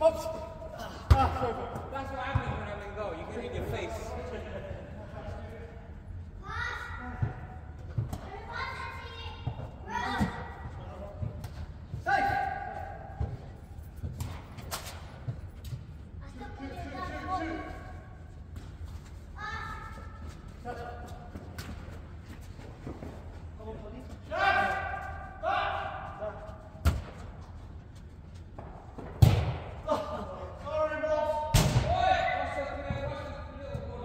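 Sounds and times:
football kicks echoing: 1.0s - 2.7s, 28.6s - 29.9s, 31.5s - 34.0s.

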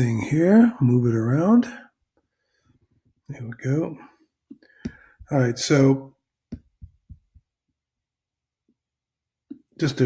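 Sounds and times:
faint low thumps: 6.5s - 7.5s.

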